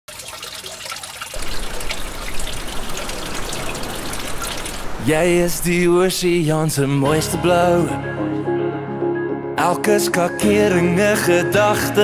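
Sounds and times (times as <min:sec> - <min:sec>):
water running from a tap: 0:00.1 - 0:05.0
water splashing into a basin: 0:00.1 - 0:05.3.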